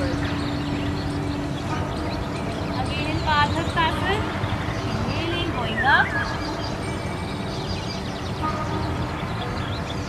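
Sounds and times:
steady low outdoor rumble: 0:00.0 - 0:10.0.

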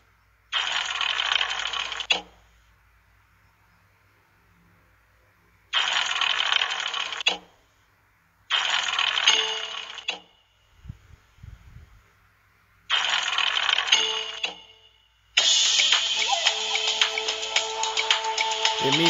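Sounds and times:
electronic slot machine effects: 0:08.7 - 0:10.2, 0:12.9 - 0:14.7, 0:15.4 - 0:19.0.

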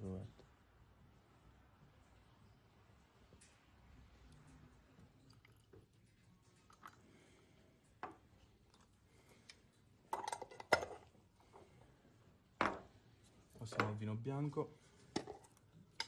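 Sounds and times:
lab glassware knocking and clinking: 0:12.6 - 0:12.9.

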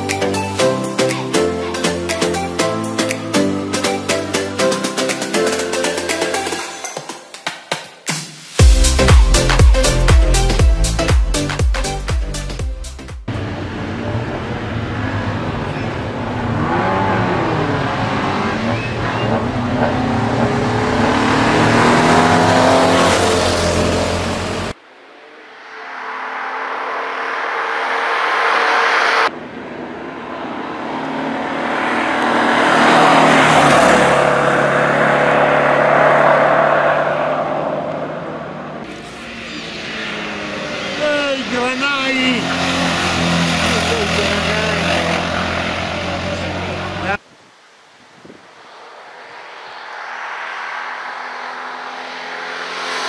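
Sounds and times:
racing car engine revving: 0:13.3 - 0:47.2, 0:49.0 - 0:53.0.

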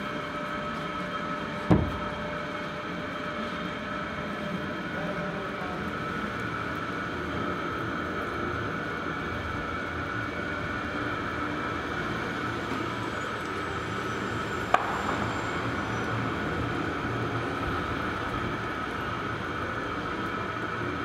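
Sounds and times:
potter's wheel motor humming: 0:00.0 - 0:21.0.

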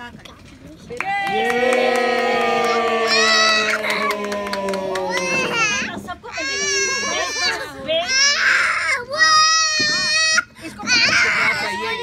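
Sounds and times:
young child crying: 0:04.9 - 0:12.0.

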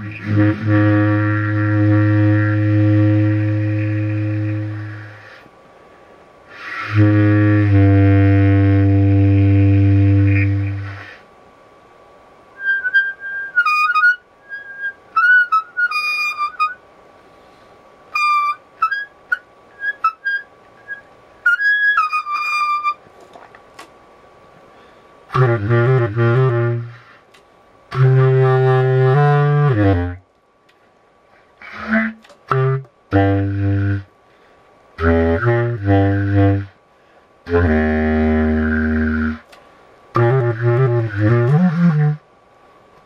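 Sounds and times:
reed woodwind playing: 0:00.0 - 0:05.5, 0:06.5 - 0:11.2, 0:12.6 - 0:16.8, 0:18.1 - 0:23.1, 0:25.3 - 0:27.2, 0:27.9 - 0:30.2, 0:31.6 - 0:34.1, 0:35.0 - 0:36.8, 0:37.5 - 0:42.3.

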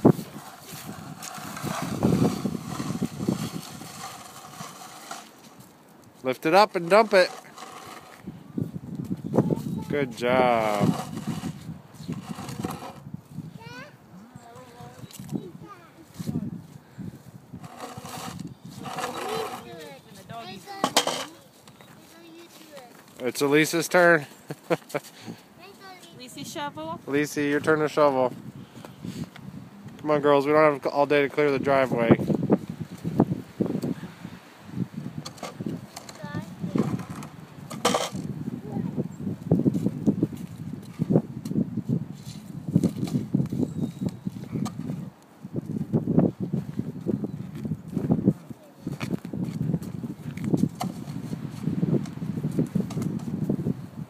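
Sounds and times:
snow shovel scraping asphalt: 0:00.0 - 0:05.7, 0:06.3 - 0:08.4, 0:09.5 - 0:13.1, 0:17.6 - 0:23.0, 0:35.2 - 0:38.3.

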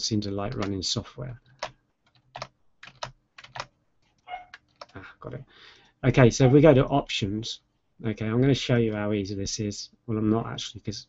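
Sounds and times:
computer keyboard key clicks: 0:04.5 - 0:05.0.

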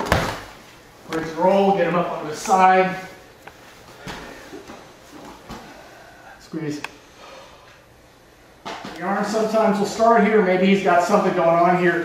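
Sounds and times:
bodies rustling on a mat: 0:02.7 - 0:05.9.

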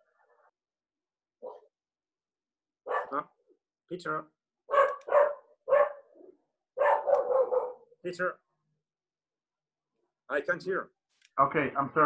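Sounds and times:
dog barking: 0:01.4 - 0:01.7, 0:02.8 - 0:03.2, 0:04.7 - 0:07.9.

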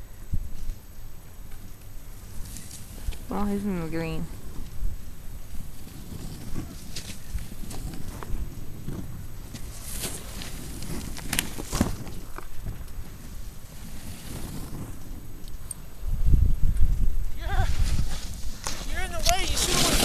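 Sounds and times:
snowboard scraping over snow: 0:01.6 - 0:20.0
wind on microphone: 0:02.2 - 0:20.0
person shouting: 0:17.4 - 0:17.8, 0:18.9 - 0:20.0.

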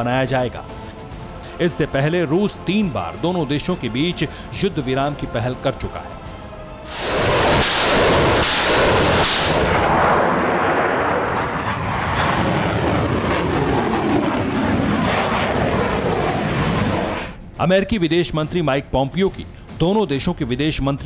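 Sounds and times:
rocket launch blasts: 0:06.8 - 0:17.4
rockets roaring away: 0:06.8 - 0:17.4.

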